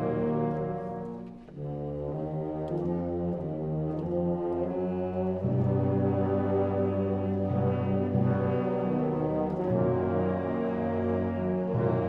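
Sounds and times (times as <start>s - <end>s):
low brass sustained chords: 0.0s - 12.0s.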